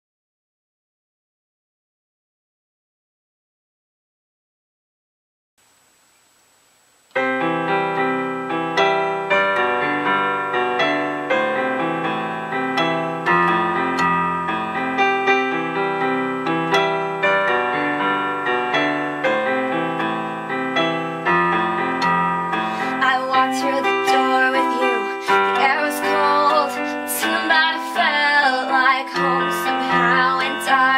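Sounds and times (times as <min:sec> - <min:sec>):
electronic keyboard piano chords: 0:07.1 - 0:30.9.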